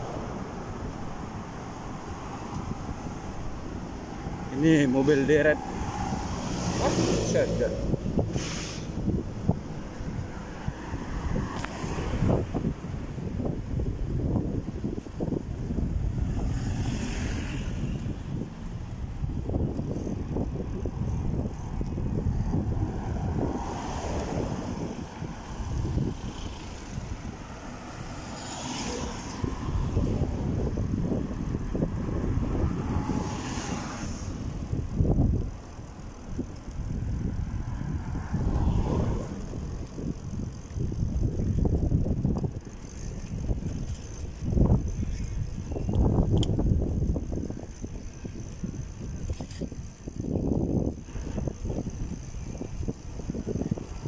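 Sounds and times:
wind buffeting microphone: 0.0 - 54.0.

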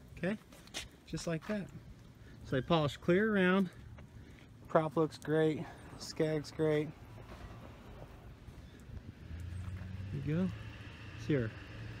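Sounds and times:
outdoor background noise: 0.0 - 12.0
low engine hum: 3.8 - 12.0.

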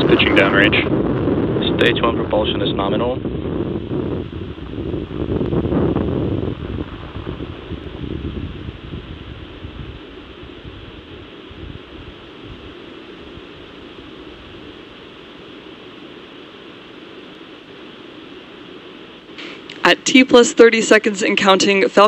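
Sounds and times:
rocket engines rumbling: 0.0 - 22.0.

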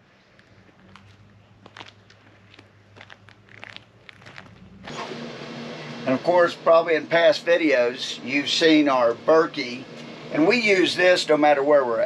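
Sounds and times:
low steady hum: 0.0 - 12.0
faint footsteps: 0.2 - 4.9.

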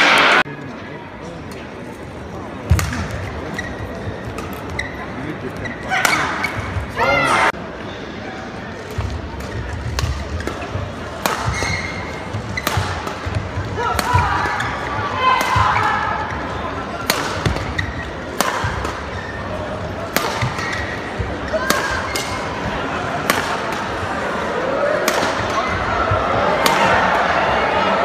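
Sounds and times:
crowd murmur in large hall: 0.0 - 28.0
rackets striking shuttlecock: 8.9 - 15.9, 17.0 - 19.2, 20.0 - 22.5, 23.2 - 24.0, 25.0 - 25.8.

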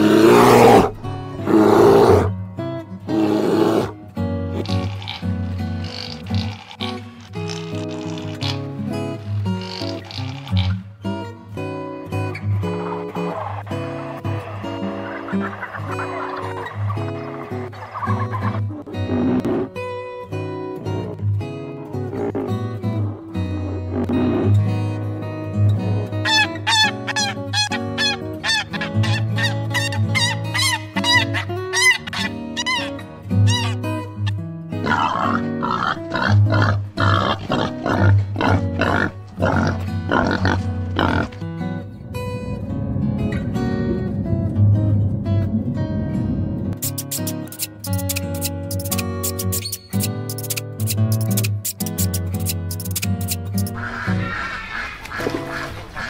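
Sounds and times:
guitar music: 0.9 - 1.5, 2.2 - 3.1, 3.9 - 54.3.

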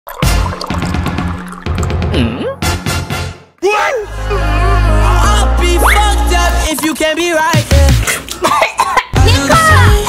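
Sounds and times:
person coughing: 2.1 - 2.6, 8.1 - 9.2
background music with bass beat: 4.3 - 10.0.

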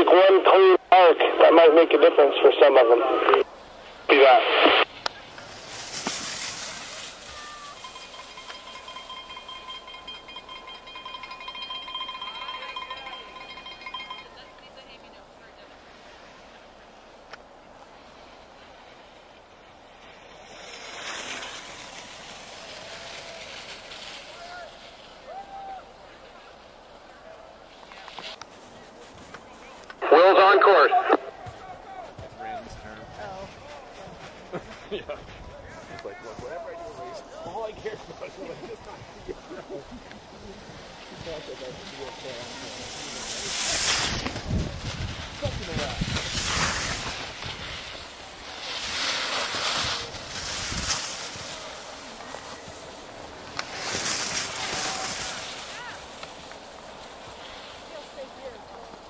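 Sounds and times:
faint voices: 0.0 - 8.0, 22.5 - 50.6
skis scraping on packed snow: 1.5 - 59.0.

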